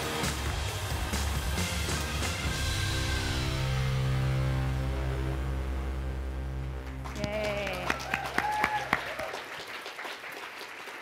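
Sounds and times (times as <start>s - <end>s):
audience applauding: 6.7s - 11.0s
people cheering: 7.0s - 11.0s.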